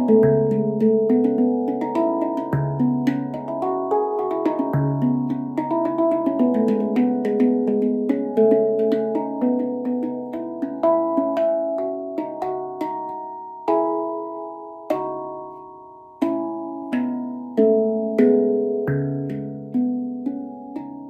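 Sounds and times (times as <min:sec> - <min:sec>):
handpan notes ringing: 0:00.0 - 0:21.0.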